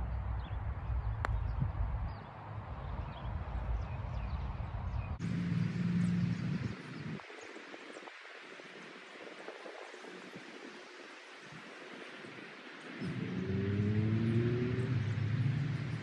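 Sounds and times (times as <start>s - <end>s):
faint outdoor hiss: 5.2s - 16.0s
motor engine speeding up: 13.0s - 16.0s.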